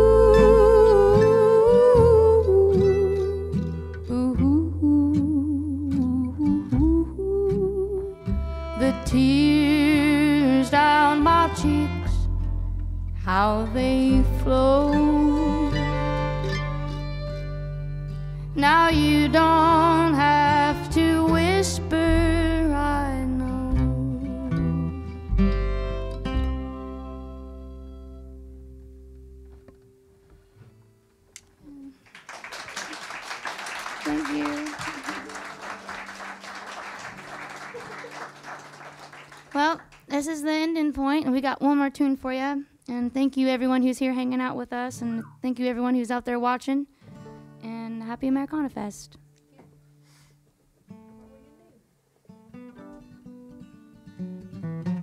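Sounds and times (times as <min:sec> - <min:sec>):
upright bass notes: 0:00.0 - 0:29.7
mandolin: 0:00.0 - 0:30.0
acoustic guitar chords: 0:00.0 - 0:32.0, 0:34.0 - 0:42.2, 0:43.0 - 0:51.6, 0:52.2 - 0:55.0
fiddle melody with vibrato: 0:07.7 - 0:28.6.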